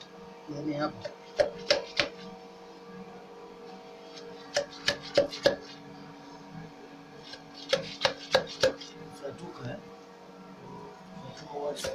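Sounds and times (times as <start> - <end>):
steady hum: 0.0 - 11.9.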